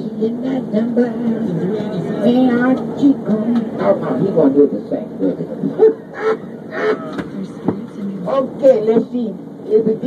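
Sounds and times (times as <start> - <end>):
bus engine rumble: 0.0 - 10.0
voices: 0.0 - 10.0.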